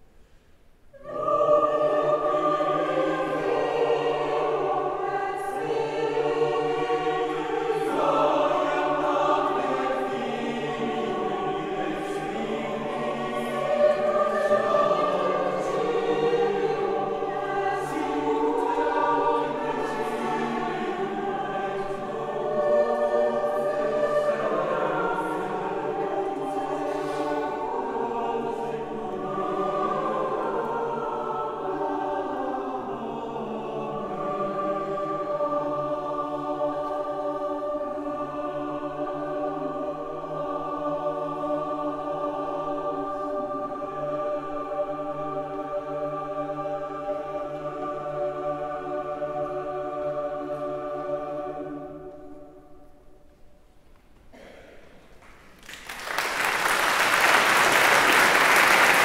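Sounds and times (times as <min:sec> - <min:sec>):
mixed choir singing a cappella: 0:00.9 - 0:59.0.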